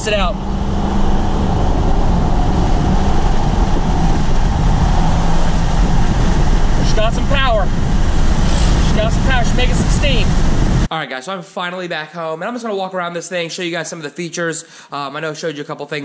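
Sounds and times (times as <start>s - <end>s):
diesel engine drone: 0.0s - 10.9s
road noise: 0.0s - 10.9s.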